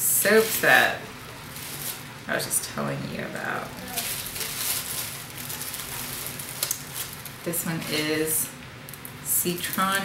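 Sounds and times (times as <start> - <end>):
soap wrapping crinkling: 3.7 - 7.4.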